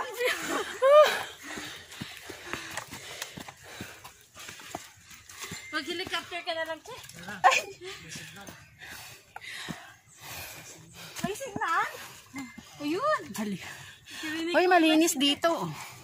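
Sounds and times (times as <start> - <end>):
people exclaiming and talking: 0.0 - 1.3
footsteps on dry leaves and twigs: 1.6 - 6.8.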